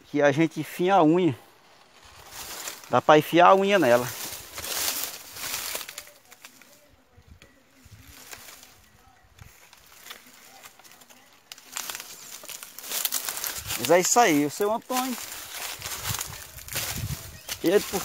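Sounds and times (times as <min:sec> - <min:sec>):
dry sugarcane rustling and crackling: 0:01.5 - 0:18.0.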